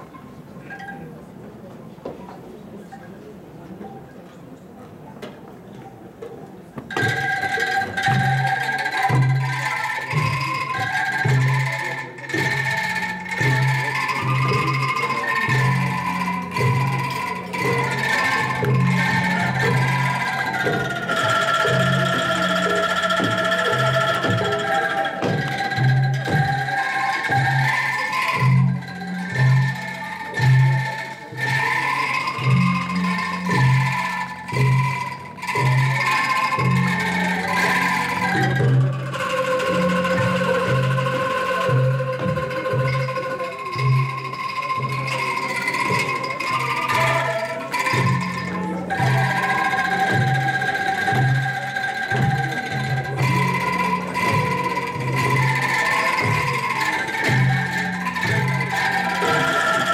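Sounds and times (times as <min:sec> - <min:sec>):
bamboo angklung rattling melody: 0:00.0 - 0:59.9
drums and gongs beat: 0:06.8 - 0:59.9.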